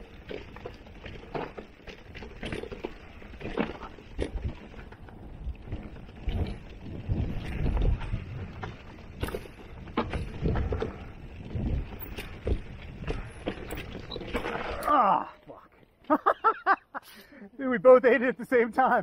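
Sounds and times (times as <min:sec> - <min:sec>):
bike frame knocks and rattles: 0:00.0 - 0:14.8
bike tyres crunching over dirt: 0:00.0 - 0:16.5
wind noise on microphone: 0:04.2 - 0:14.7.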